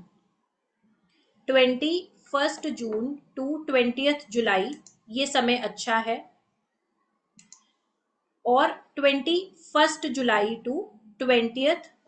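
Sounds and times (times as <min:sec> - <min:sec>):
person speaking: 0:01.5 - 0:06.4
short faint clicks: 0:07.4 - 0:07.7.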